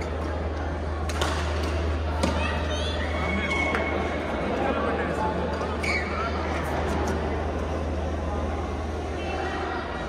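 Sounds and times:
steady low hum: 0.0s - 10.0s
shoe squeak: 5.8s - 6.3s.

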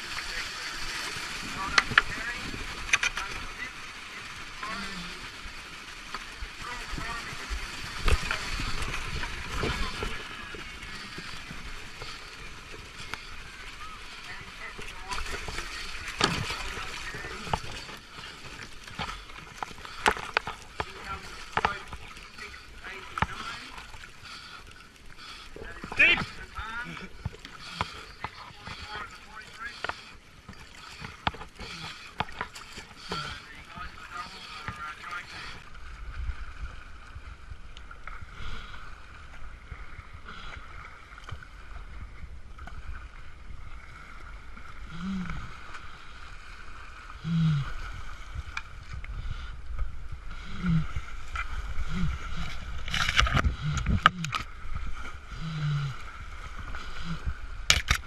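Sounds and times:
whitewater churning and splashing: 0.0s - 58.0s.

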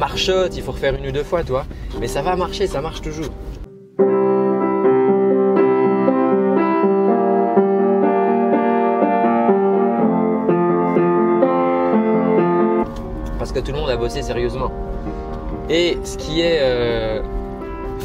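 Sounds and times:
piano playing chords and melody: 0.0s - 18.0s.

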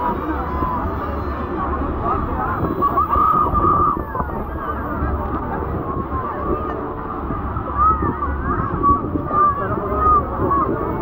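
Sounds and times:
passengers chatting: 0.0s - 11.0s.

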